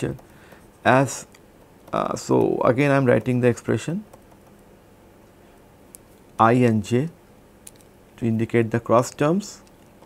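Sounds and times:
stylus tapping tablet: 0.0s - 4.7s
faint background hiss: 0.0s - 10.0s.

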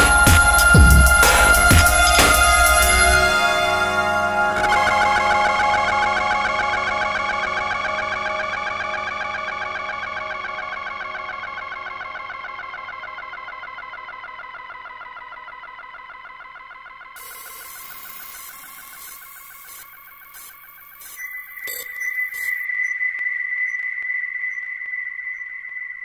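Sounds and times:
shimmering synthesizer drone: 0.0s - 26.0s
glitchy crackles and clicks: 17.2s - 24.2s.

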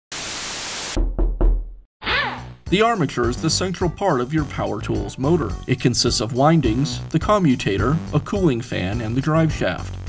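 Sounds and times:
static hiss burst: 0.1s - 1.0s.

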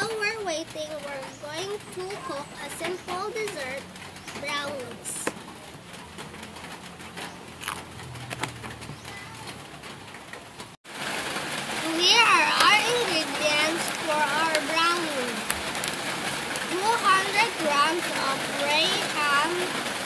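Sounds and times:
child talking: 0.0s - 5.3s, 9.1s - 9.6s, 11.8s - 15.5s, 16.7s - 19.7s.

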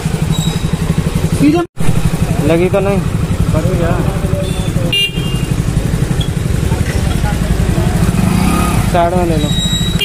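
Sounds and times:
motorcycle engine running at low speed: 0.0s - 10.0s.

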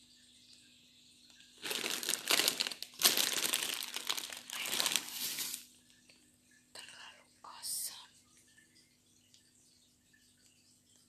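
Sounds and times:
woman whispering: 6.8s - 8.2s.

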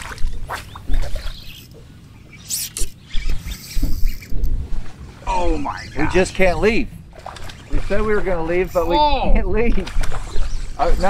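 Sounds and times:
wind buffeting microphone: 3.1s - 11.0s.

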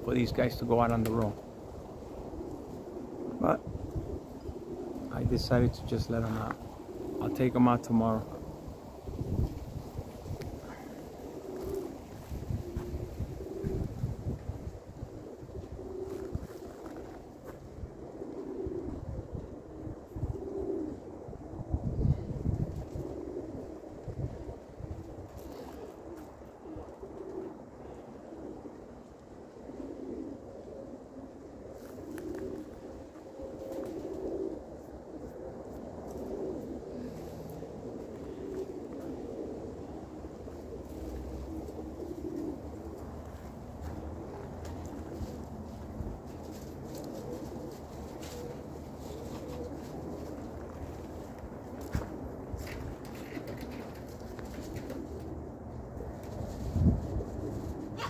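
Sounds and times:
pigeons cooing: 0.0s - 58.0s.

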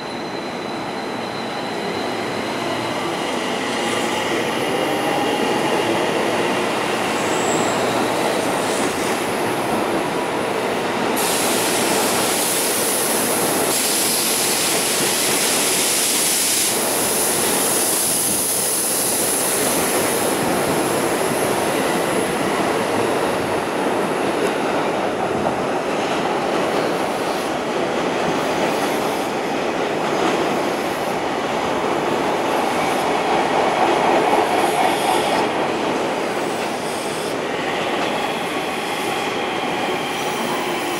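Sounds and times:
train wheels rumbling on rail: 0.0s - 40.9s.

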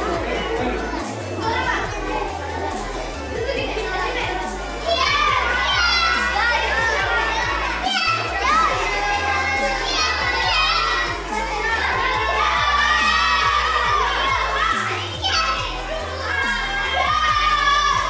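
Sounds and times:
background music with bass line: 0.0s - 18.0s
children shouting and cheering: 0.0s - 18.0s.

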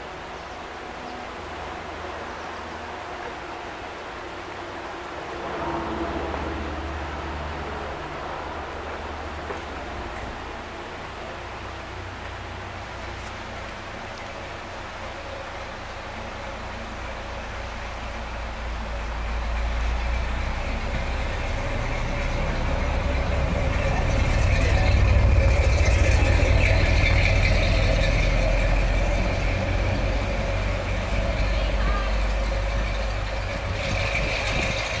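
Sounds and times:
truck engine passing: 3.7s - 35.0s.

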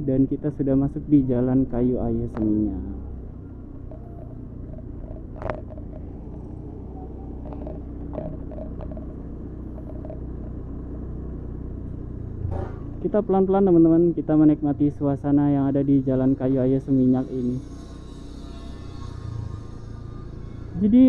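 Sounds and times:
vehicle engine and road noise: 0.0s - 21.0s.

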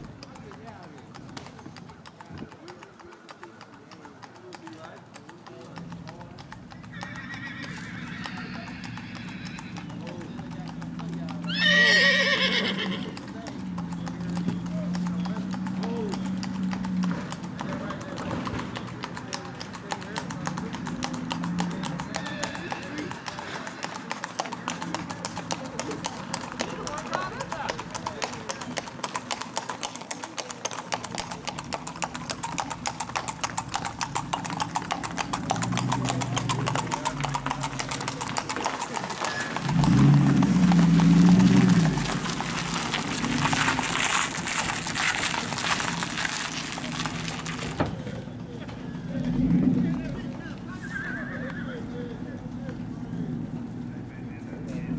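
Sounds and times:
hooves clip-clopping on asphalt: 0.0s - 54.9s
loud high horse call: 6.6s - 15.0s, 20.2s - 28.9s, 30.0s - 47.8s, 50.6s - 52.2s.

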